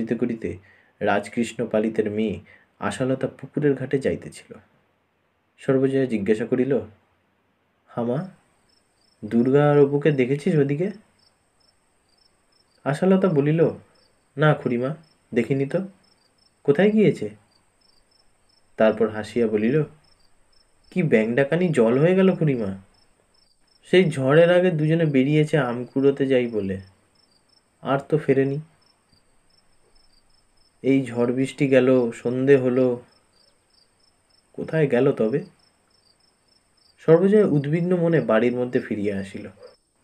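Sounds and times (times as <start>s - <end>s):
crickets chirping: 0.0s - 4.3s, 7.8s - 40.0s
man reading aloud: 0.0s - 4.8s, 5.6s - 7.0s, 7.9s - 8.4s, 9.2s - 11.1s, 12.8s - 16.0s, 16.7s - 17.5s, 18.8s - 20.0s, 20.9s - 22.9s, 23.8s - 27.0s, 27.8s - 28.8s, 30.8s - 33.1s, 34.6s - 35.6s, 37.0s - 39.8s
person speaking: 9.2s - 11.1s, 18.8s - 20.0s, 20.9s - 22.9s, 23.8s - 27.0s, 30.8s - 33.1s, 34.6s - 35.6s, 37.0s - 39.8s.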